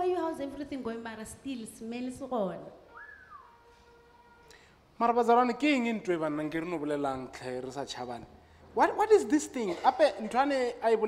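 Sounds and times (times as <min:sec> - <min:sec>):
woman's voice: 0:00.0 - 0:02.8
thin whistle-like note: 0:02.9 - 0:04.2.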